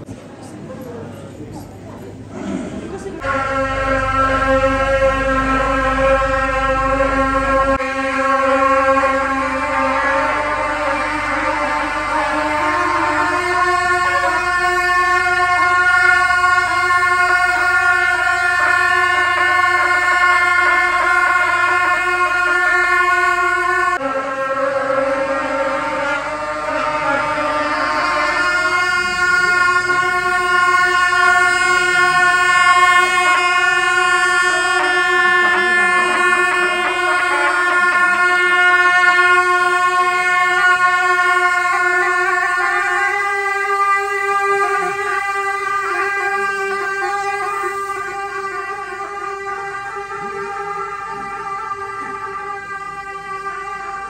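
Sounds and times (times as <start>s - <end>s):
double-reed shawms long notes: 0.0s - 54.0s.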